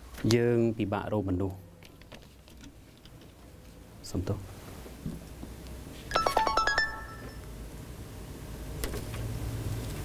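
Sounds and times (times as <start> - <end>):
mobile phone electronic tone: 6.1 - 7.4.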